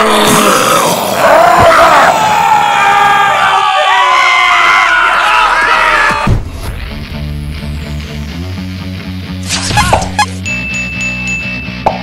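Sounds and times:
background music: 0:06.2 - 0:12.0
cartoonish sound effects: 0:09.4 - 0:10.4.

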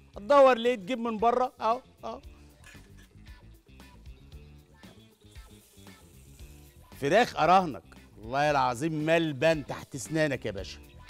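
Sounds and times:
quiet background music: 0:00.0 - 0:11.0
food sizzling on grill pan: 0:05.0 - 0:06.9.

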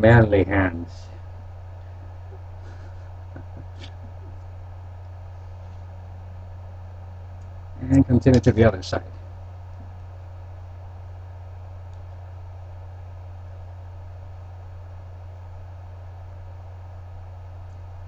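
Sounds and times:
low electrical hum: 0:00.0 - 0:18.0.

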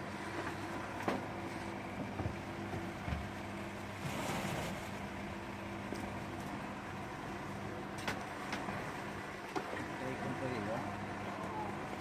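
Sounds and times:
low mechanical motor hum: 0:00.0 - 0:12.0.

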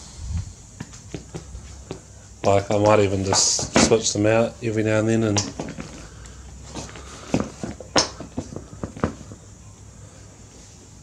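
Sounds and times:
footsteps on concrete floor: 0:00.0 - 0:04.1.

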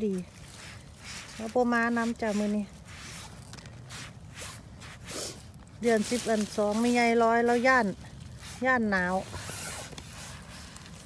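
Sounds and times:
hand rustling through leaves: 0:00.0 - 0:11.0.

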